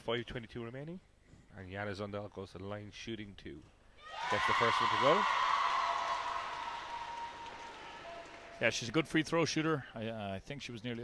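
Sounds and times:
crowd cheering and clapping: 0:04.0 - 0:08.9.

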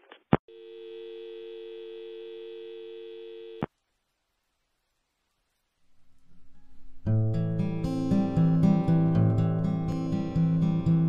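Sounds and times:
two-note dial tone: 0:00.5 - 0:03.7.

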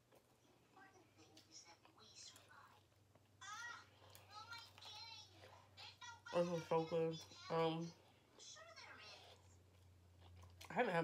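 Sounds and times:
faint high-pitched voice: 0:03.4 - 0:09.4.

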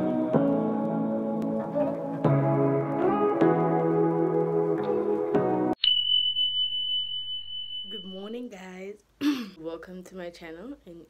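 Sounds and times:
high pure electronic tone: 0:05.8 - 0:08.3
woman speaking: 0:07.9 - 0:11.0.

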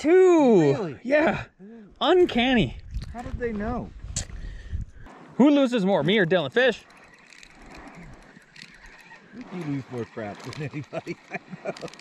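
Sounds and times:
spinning reel whirring: 0:05.9 - 0:12.0
reel gears clicking: 0:06.1 - 0:12.0.

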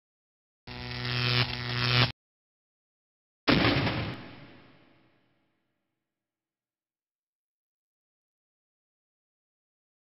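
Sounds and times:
low buzzing hum: 0:00.7 - 0:02.1.

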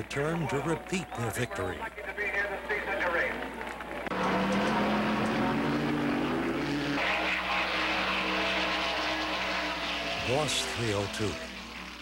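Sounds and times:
racing car engines at speed: 0:02.9 - 0:12.0.

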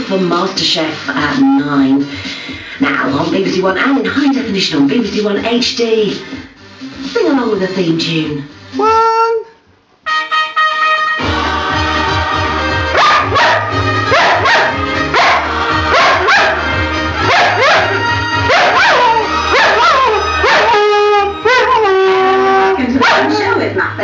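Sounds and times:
television theme music: 0:00.0 - 0:24.0
dog barking and howling: 0:12.9 - 0:23.4.

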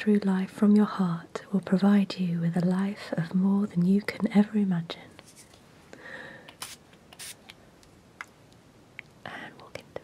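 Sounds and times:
soft breathy sound: 0:05.9 - 0:06.6.

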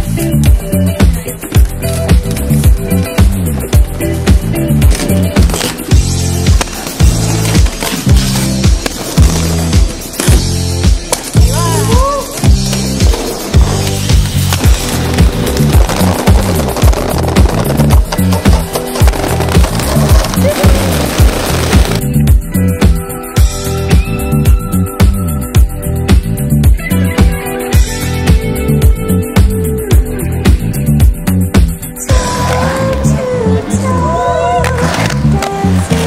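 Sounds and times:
music with pulsing bass: 0:00.0 - 0:36.0
roller skate wheels on concrete: 0:00.0 - 0:36.0.

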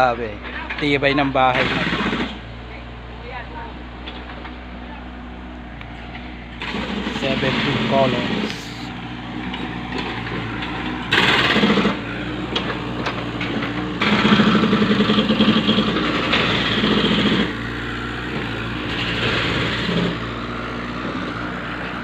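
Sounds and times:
excavator diesel engine running: 0:00.0 - 0:22.0.

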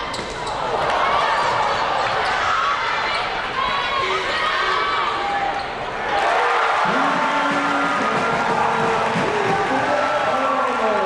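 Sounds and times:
crowd noise and voices: 0:00.0 - 0:11.0.

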